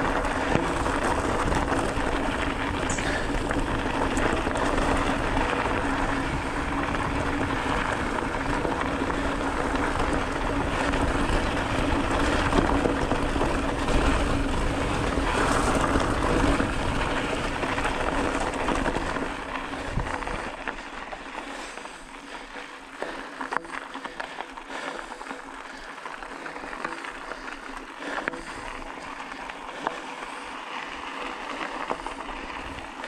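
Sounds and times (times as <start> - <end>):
bike frame rattle: 0.0 - 33.0
bike tyres crunching on gravel: 0.0 - 33.0
constant low hum: 0.0 - 33.0.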